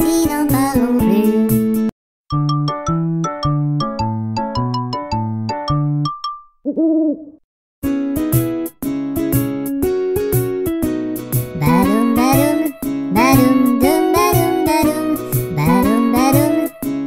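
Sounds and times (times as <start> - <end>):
children's song music: 0.0 - 6.2, 7.8 - 17.0
bouncing bass line: 2.3 - 6.7, 11.6 - 15.0
owl hoot: 6.7 - 7.4.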